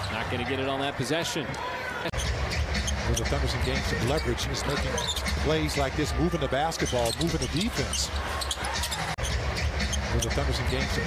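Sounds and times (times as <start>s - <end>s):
sneaker squeaks: 4.2s - 5.4s, 6.8s - 10.1s.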